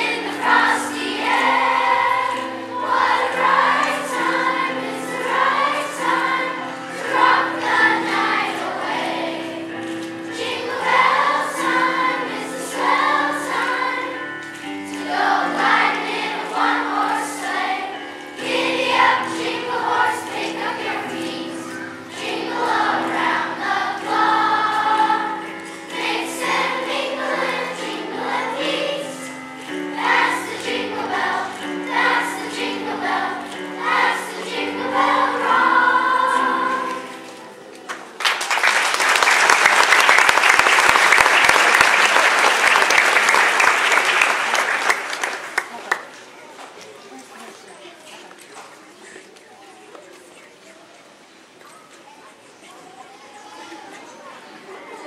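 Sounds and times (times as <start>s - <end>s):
instrumental accompaniment: 0.0s - 38.0s
children's choir singing: 0.0s - 46.3s
audience applause: 37.9s - 46.2s.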